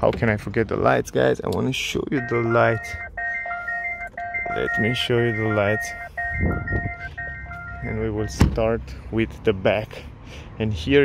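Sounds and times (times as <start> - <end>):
car warning chime beeps: 2.1 - 8.6.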